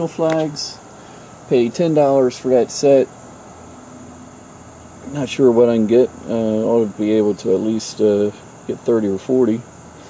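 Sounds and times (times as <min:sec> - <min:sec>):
background hiss: 0:00.0 - 0:10.0
faint high-pitched hum: 0:00.0 - 0:10.0.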